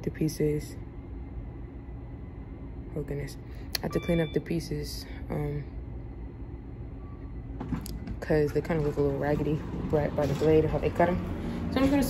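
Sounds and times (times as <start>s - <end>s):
low rumble: 5.3s - 12.0s.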